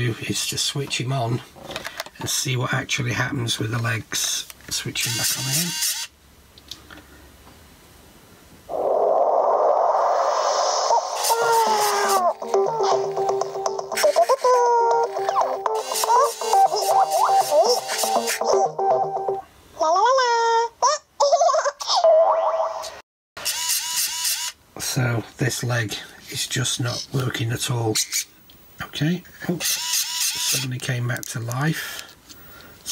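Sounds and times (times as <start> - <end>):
start-up jingle: 15.4 - 19.4.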